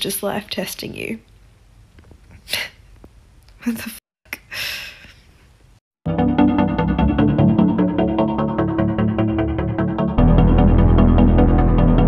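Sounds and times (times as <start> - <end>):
woman's breathy exhale: 4.5 - 5.2.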